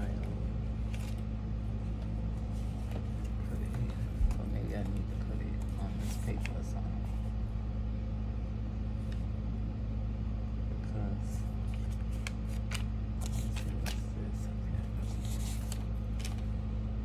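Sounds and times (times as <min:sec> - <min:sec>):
papers and envelopes rustling: 0:00.0 - 0:07.3, 0:11.4 - 0:16.6
steady low hum: 0:00.0 - 0:17.0.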